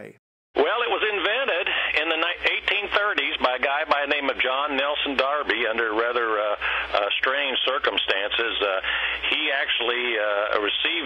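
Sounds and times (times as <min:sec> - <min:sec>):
man speaking over telephone line: 0:00.0 - 0:11.0.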